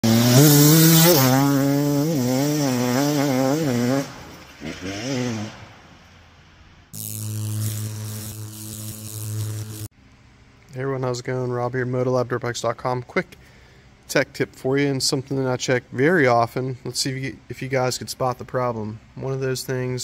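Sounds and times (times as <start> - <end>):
dirt bike engine revving: 0.0 - 5.8, 7.0 - 9.9
steady engine note: 7.0 - 9.9.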